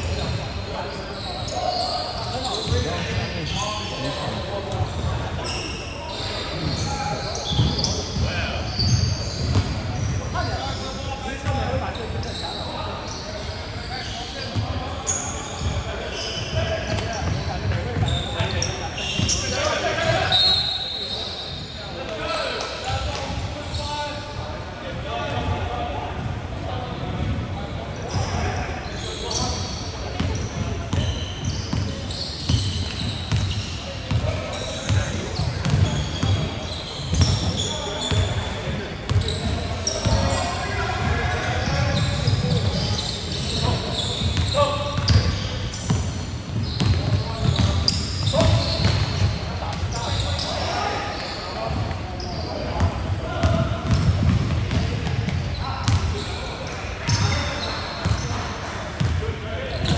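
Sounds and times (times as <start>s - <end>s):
sneakers squeaking: 0.0s - 59.9s
basketball bouncing: 53.4s - 56.1s.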